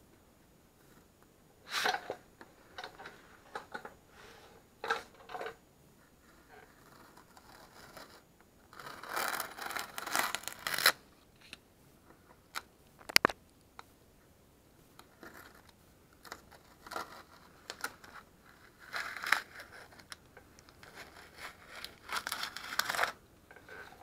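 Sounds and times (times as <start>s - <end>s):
masking tape ripping off: 8.9s - 11.0s.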